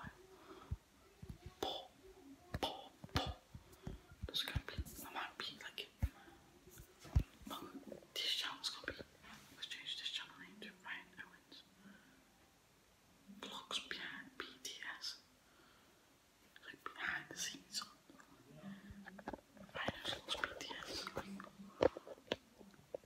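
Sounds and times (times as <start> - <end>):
boy whispering: 0.0 - 11.7, 13.4 - 15.3, 16.5 - 22.4.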